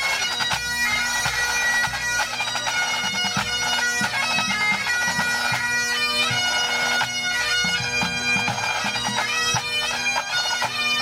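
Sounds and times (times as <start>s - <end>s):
bagpipes playing: 0.0s - 11.0s.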